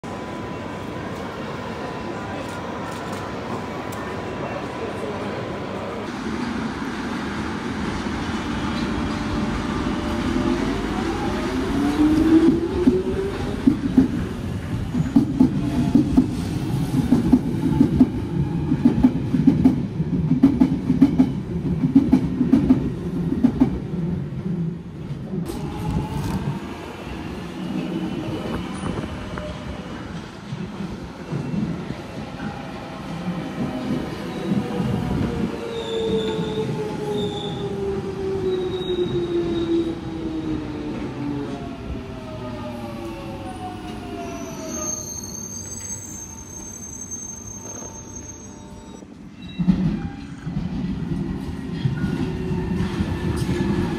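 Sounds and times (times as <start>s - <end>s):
high brake squeals: 35.7s - 37.7s, 44.2s - 50.4s.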